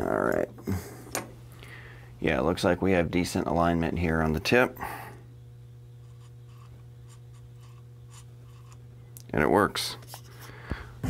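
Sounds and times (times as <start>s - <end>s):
dial indicator scratching and ticking: 6.0s - 8.8s.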